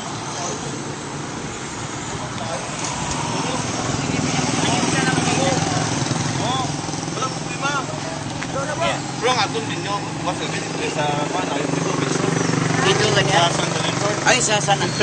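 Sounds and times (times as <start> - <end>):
people talking: 0.0 - 0.9, 2.1 - 15.0
vehicle engine running: 0.0 - 15.0.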